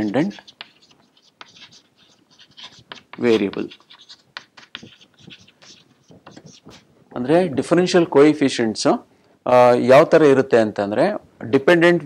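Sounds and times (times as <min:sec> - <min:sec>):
chalk scratching on chalkboard: 0:00.0 - 0:06.9, 0:07.8 - 0:08.2.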